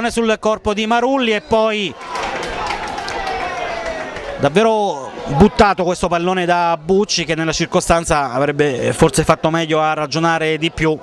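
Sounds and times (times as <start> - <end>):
steady outdoor noise: 0.0 - 11.0.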